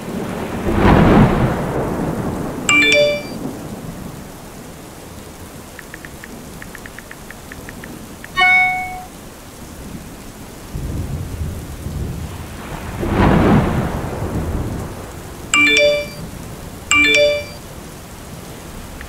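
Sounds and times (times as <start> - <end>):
steady rain: 0.0 - 19.0
thunder rolling: 0.1 - 2.7, 10.8 - 15.5
text message chime: 2.7 - 3.4, 8.3 - 9.1, 15.6 - 16.2, 16.9 - 17.6.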